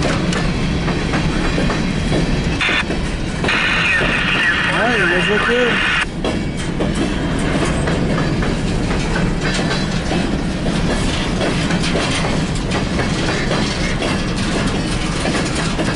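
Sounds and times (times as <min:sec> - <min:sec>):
freight train rumbling past: 0:00.0 - 0:15.9
wheel clacks over rail joints: 0:06.2 - 0:15.9.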